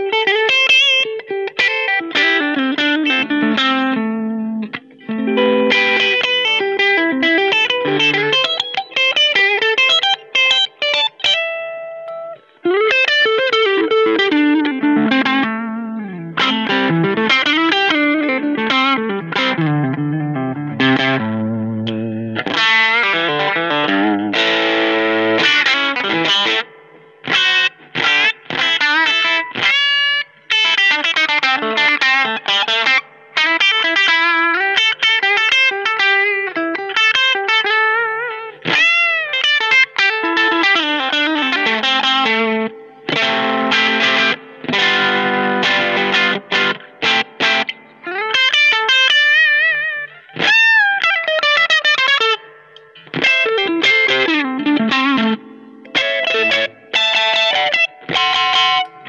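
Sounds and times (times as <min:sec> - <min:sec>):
overdriven electric guitar: 0:00.0 - 0:59.0.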